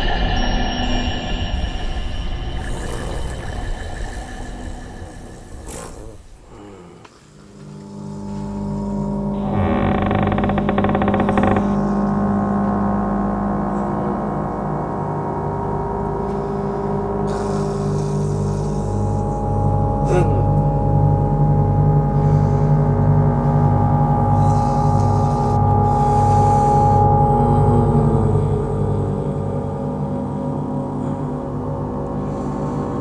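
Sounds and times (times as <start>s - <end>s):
dark ambient film music: 0.0s - 33.0s
low sustained drone: 0.0s - 33.0s.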